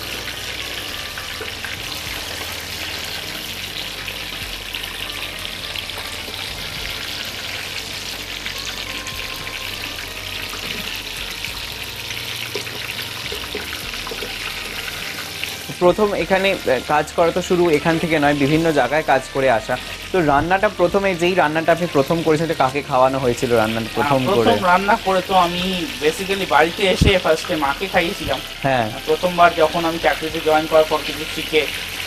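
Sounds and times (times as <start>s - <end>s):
mushrooms sizzling in hot oil: 0.0s - 32.0s
slotted spoon stirring in oil: 0.0s - 32.0s.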